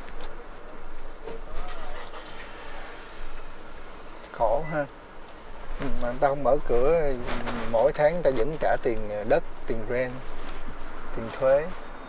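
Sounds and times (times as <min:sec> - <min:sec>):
car driving slowly: 0:00.0 - 0:12.0
faint voices: 0:00.4 - 0:03.6.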